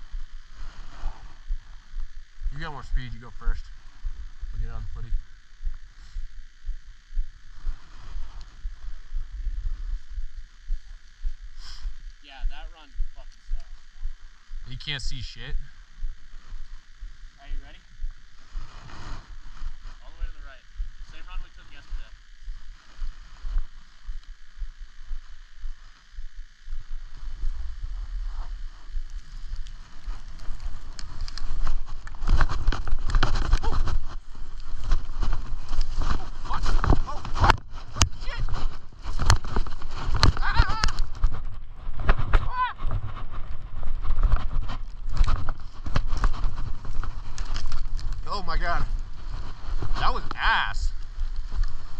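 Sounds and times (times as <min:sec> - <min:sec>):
low rumble: 0:00.0 - 0:51.9
skis scraping over snow: 0:18.6 - 0:19.3, 0:29.3 - 0:41.0.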